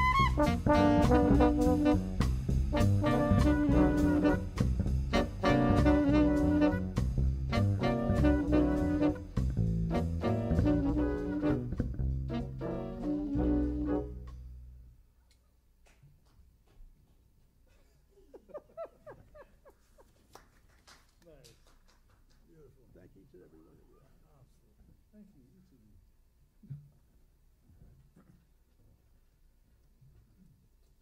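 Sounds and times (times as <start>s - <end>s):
small jazz band playing: 0.0s - 14.8s.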